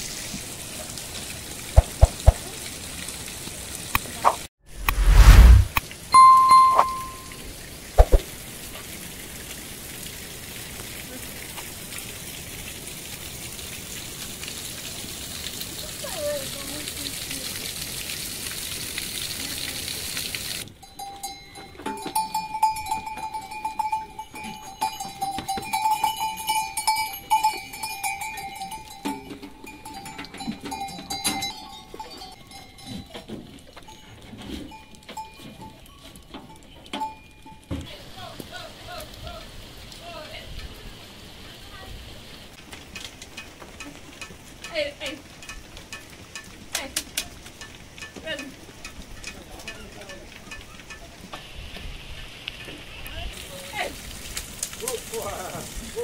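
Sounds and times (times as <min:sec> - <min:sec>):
rain falling: 0:00.0 - 0:56.0
livestock bells ringing: 0:06.2 - 0:07.4, 0:20.8 - 0:37.7
animals feeding knocks and rustles: 0:29.1 - 0:37.8.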